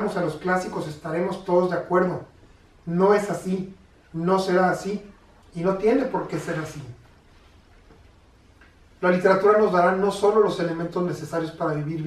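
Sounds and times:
faint low hum with hiss: 0.0 - 12.0.

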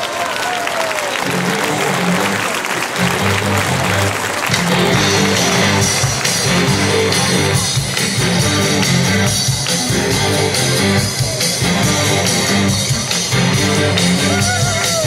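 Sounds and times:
audience applauding: 0.0 - 15.0
electric guitar: 1.1 - 15.0
bass notes: 1.2 - 15.0
live rock band playing: 1.2 - 15.0.

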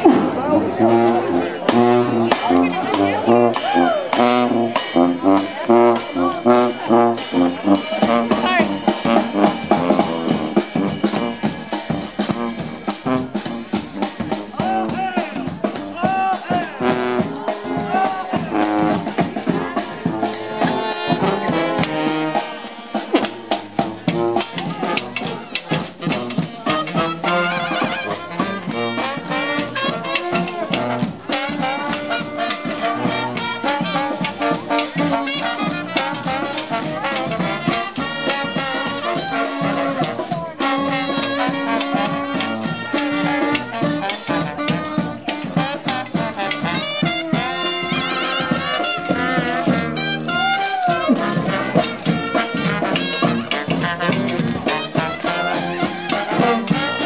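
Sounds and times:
bass drum and cymbal beat: 0.0 - 57.0
marching brass band playing jazz: 0.0 - 57.0
people's voices: 0.0 - 57.0.

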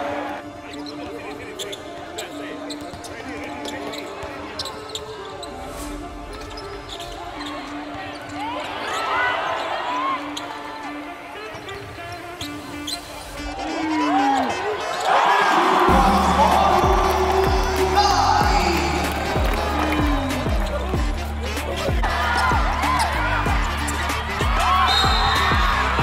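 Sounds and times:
murmur of voices: 0.0 - 26.0.

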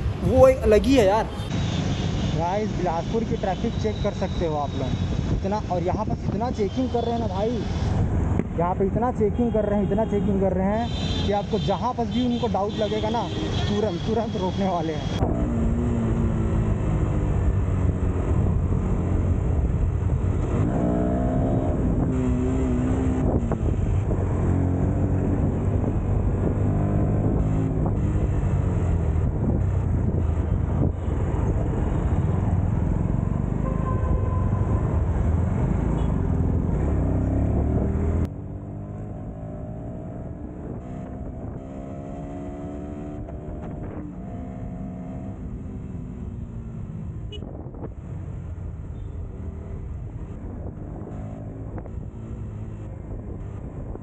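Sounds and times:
motorcycle engine revving: 20.2 - 33.6, 34.5 - 47.5.

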